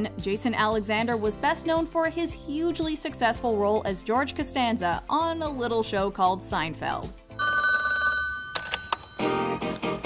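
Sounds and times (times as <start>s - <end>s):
landline telephone ringing: 7.4s - 9.5s.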